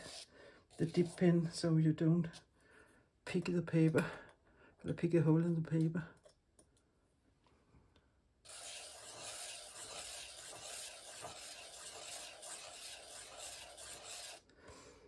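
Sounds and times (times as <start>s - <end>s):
pen nib scratching on paper: 8.5s - 14.4s.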